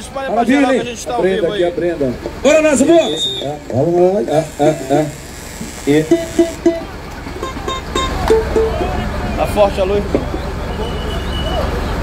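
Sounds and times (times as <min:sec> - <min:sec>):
short pitched notes: 0:05.9 - 0:11.0.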